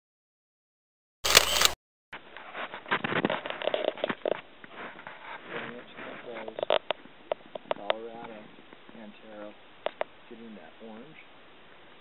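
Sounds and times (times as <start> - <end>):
camera shutter click: 1.3 - 1.8
rustling and handling noise: 1.3 - 9.1.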